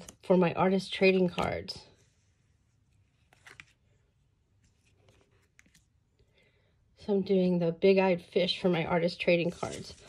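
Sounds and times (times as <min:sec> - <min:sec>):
paper rustles: 0:09.4 - 0:10.0.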